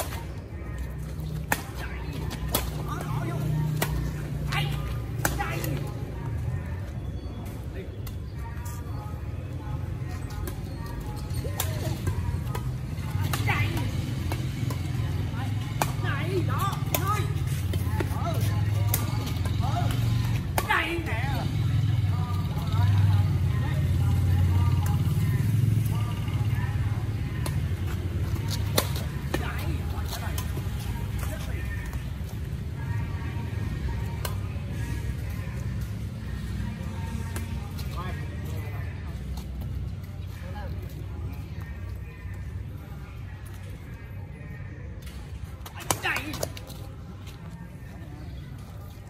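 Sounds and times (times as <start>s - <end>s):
rackets hitting shuttlecock: 11.4s - 21.1s, 27.4s - 31.4s.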